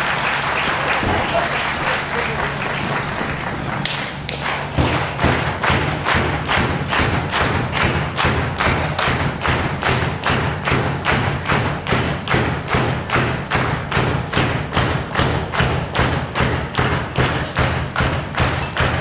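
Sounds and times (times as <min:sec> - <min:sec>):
rhythmic thumping: 0:00.9 - 0:19.0.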